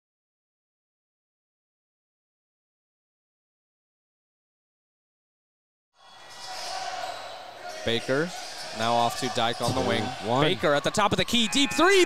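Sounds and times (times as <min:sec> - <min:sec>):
steady hall noise: 0:06.0 - 0:12.0
commentator speaking: 0:08.8 - 0:12.0.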